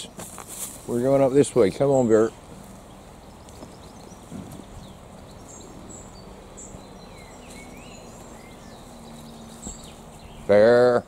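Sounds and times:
low outdoor rumble: 0.0 - 11.0
songbirds chirping and whistling: 0.0 - 11.0.

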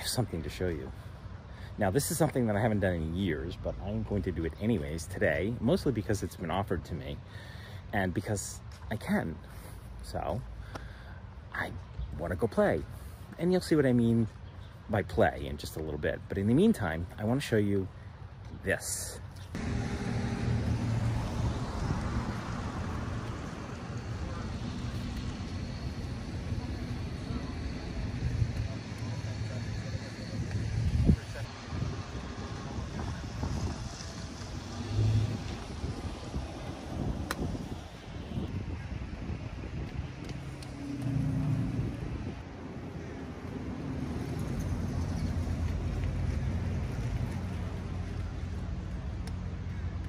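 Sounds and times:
passing vehicle engines drone: 19.5 - 50.0
wind buffeting microphone: 30.2 - 42.6.

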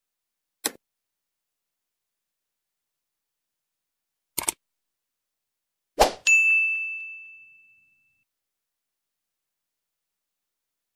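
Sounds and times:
notification bell ding: 6.2 - 8.2.

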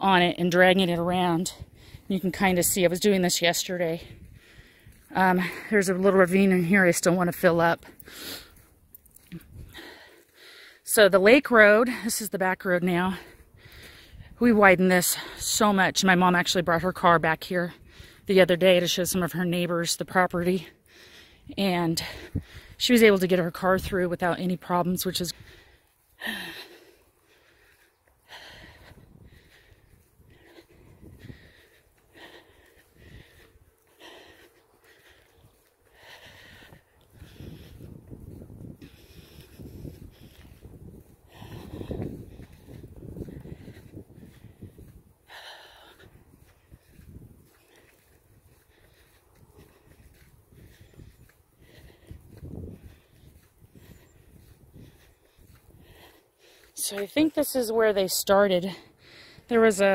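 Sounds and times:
footsteps on dirt and gravel: 0.0 - 59.9
heavy wheezy breathing: 3.9 - 5.8, 7.8 - 8.8, 20.6 - 22.8, 25.2 - 57.0, 58.6 - 59.9.

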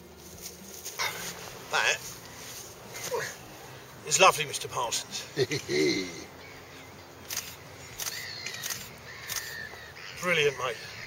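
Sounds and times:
faint bird calls: 5.2 - 11.0.

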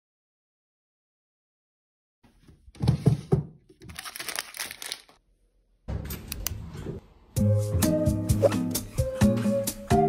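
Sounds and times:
crinkling rustling handling noise: 3.7 - 5.2.

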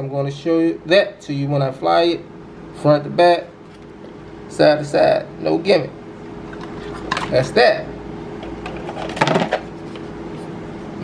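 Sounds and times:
faint steady hum: 0.0 - 11.0
plastic parts clattering on table: 8.6 - 9.7.

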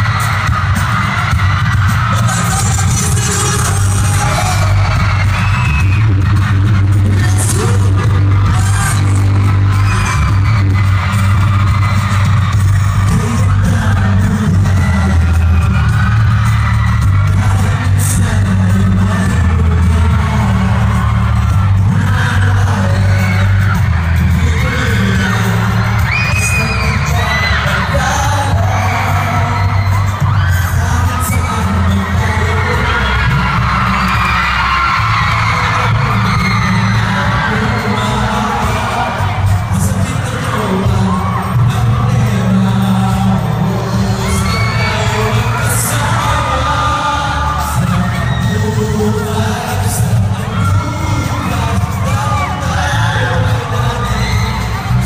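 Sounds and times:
audience: 0.0 - 55.0
loud pop music with heavy bass: 0.0 - 55.0
male vocal group singing: 2.1 - 11.4, 13.0 - 16.4, 17.2 - 55.0.

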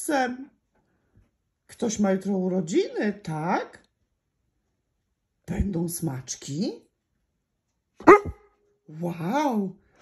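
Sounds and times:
dog barking: 8.0 - 8.5.

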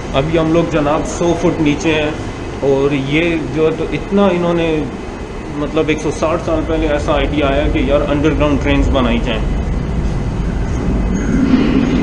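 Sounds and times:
thin high whine: 0.0 - 12.0
train rumbling through tunnel: 0.0 - 12.0.

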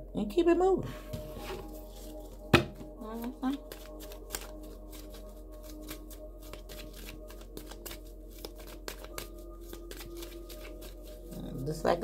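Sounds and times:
quiet background music: 0.0 - 12.0
cards being shuffled: 1.5 - 11.6.

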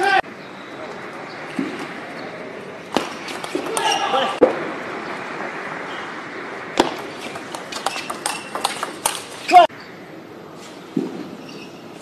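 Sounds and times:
voices calling out: 0.0 - 10.2
table tennis ball clacks: 6.8 - 9.3.

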